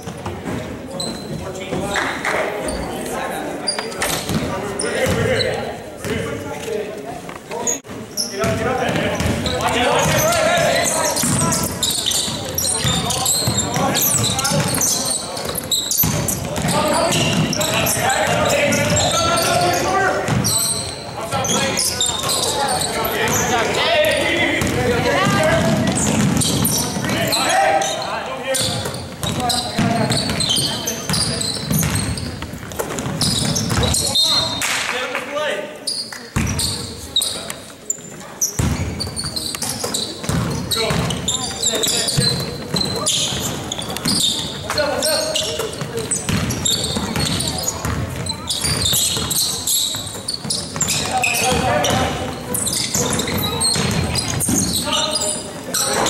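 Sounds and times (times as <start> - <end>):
voices calling out: 7.6 - 34.8
basketball dribbling on hardwood: 46.3 - 49.3.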